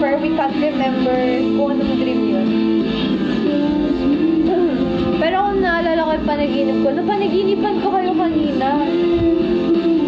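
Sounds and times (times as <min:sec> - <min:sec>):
backing music: 0:00.0 - 0:10.0
woman singing slow melody: 0:00.9 - 0:10.0.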